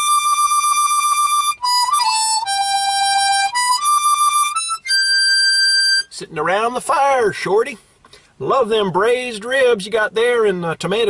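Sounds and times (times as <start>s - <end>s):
harmonica melody with tremolo: 0.0s - 6.3s.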